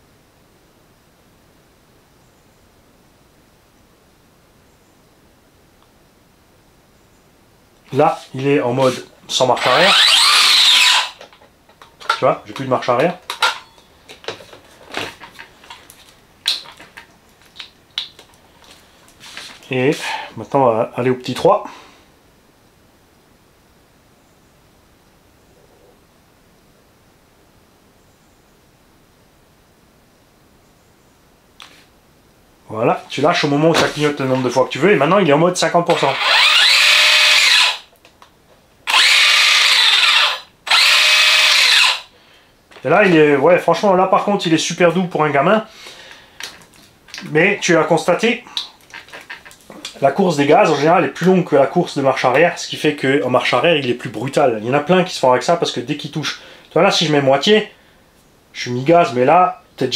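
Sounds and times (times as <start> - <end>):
electric motor whining: 9.6 - 11.2, 35.9 - 37.9, 38.9 - 42.1.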